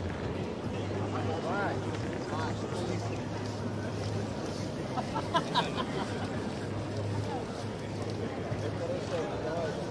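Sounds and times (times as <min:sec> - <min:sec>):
outdoor street noise: 0:00.0 - 0:09.9.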